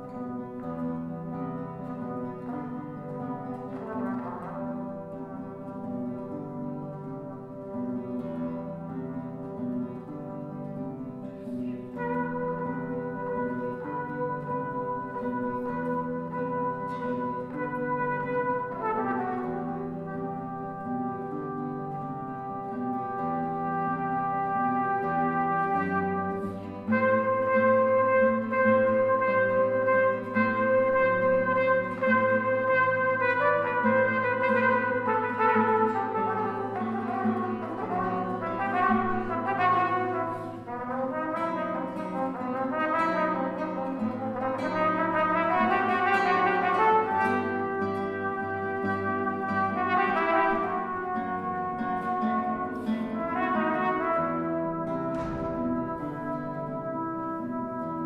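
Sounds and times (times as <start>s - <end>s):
classical guitar playing: 0.0s - 58.0s
cornet melody: 12.0s - 58.0s.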